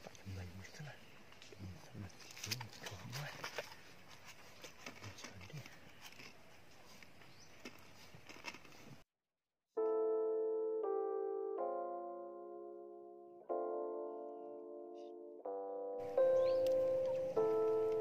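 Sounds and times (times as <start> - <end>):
small clicks and rustles: 1.3 - 9.0
piano music: 9.8 - 18.0.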